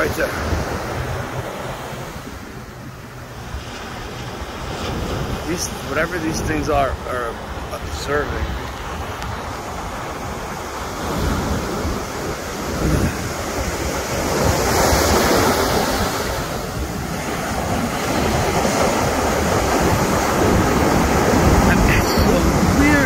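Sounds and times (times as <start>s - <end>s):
ocean surf: 0.0s - 23.0s
wind on microphone: 0.0s - 23.0s.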